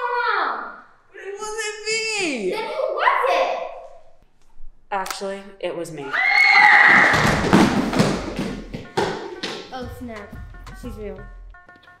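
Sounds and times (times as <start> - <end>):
clatter of thuds and knocks: 7.1 - 9.2.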